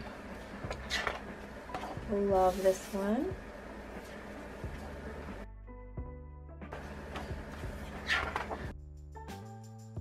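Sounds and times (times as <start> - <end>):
paper pages turning: 7.8 - 8.6.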